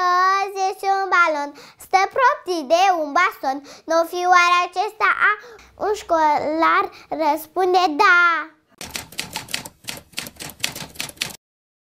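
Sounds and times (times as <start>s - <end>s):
typewriter keystrokes clacking: 8.8s - 11.4s.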